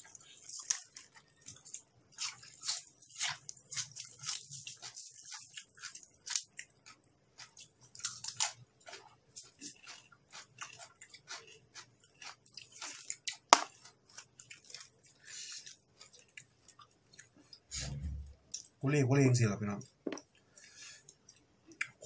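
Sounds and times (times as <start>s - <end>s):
chewing with mouth clicks: 0.0s - 17.7s, 19.8s - 22.0s.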